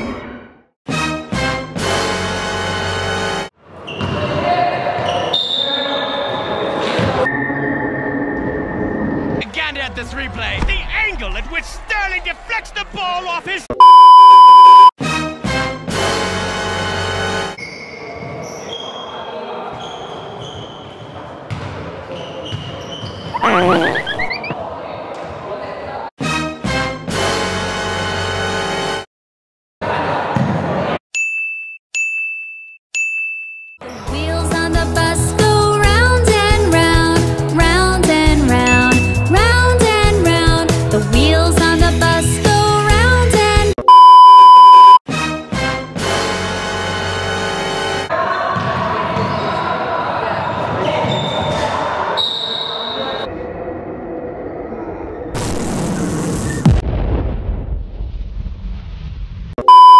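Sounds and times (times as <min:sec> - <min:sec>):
noisy hall sound: 0:02.9 - 0:13.4, 0:17.0 - 0:23.4, 0:46.6 - 0:56.8
players' voices echoing: 0:09.4 - 0:13.8, 0:23.4 - 0:26.1
basketball bouncing on floor: 0:21.5 - 0:21.9
bright dings: 0:38.7 - 0:39.3
low boom: 0:55.4 - 0:59.6.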